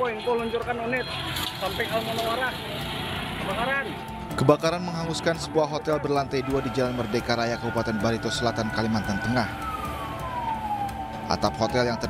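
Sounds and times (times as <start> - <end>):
fire truck engine running: 9.6 - 11.3.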